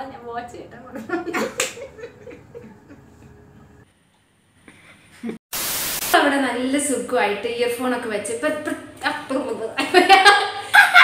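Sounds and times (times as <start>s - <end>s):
tv static hiss burst: 5.5s - 6.2s.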